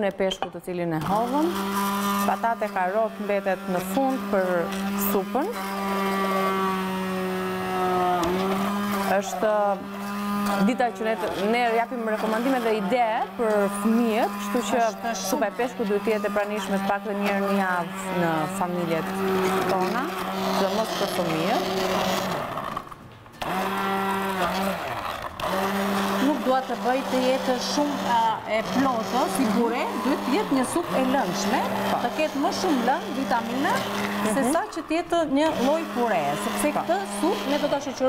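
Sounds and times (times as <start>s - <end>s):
immersion blender motor humming: 1.0s - 38.0s.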